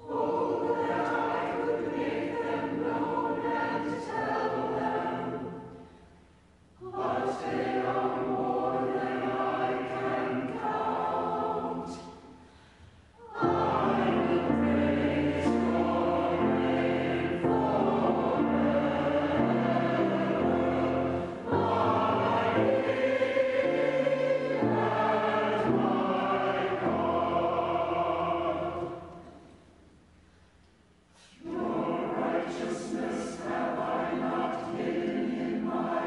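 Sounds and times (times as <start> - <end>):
church choir singing: 0.0 - 6.1, 6.8 - 29.7, 31.2 - 36.0.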